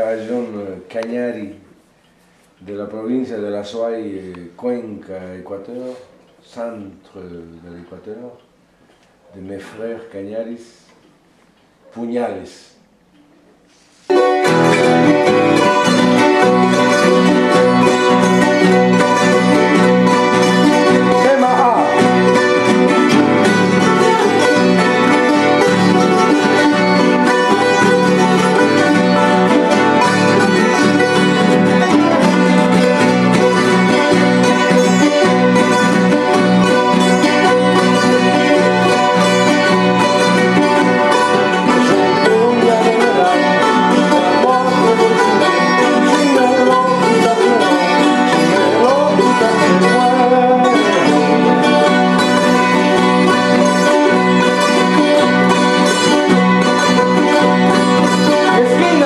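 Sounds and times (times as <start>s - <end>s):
plucked strings and guitar dance tune: 14.0s - 59.0s.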